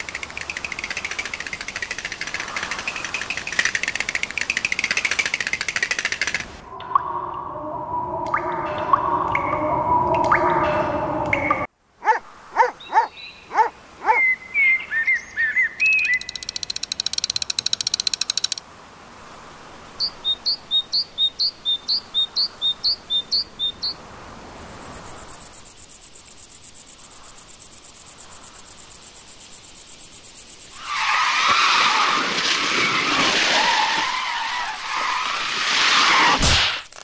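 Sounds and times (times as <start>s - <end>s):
high pulsing insect trill: 0.0s - 6.4s.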